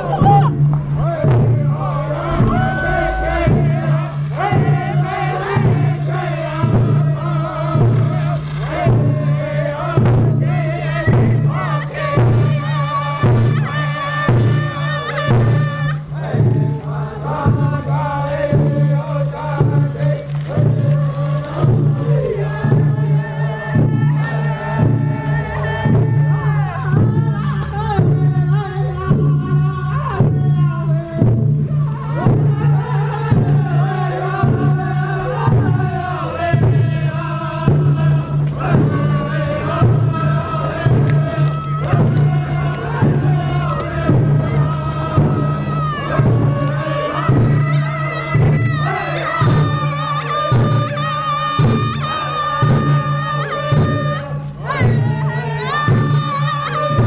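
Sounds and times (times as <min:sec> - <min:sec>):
steady drumbeat: 0:00.0 - 0:08.2, 0:08.8 - 0:57.0
voices singing together: 0:00.0 - 0:57.0.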